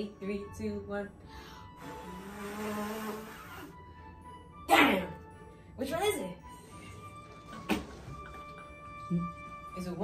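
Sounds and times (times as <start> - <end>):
background music with low note: 0.0 - 10.0.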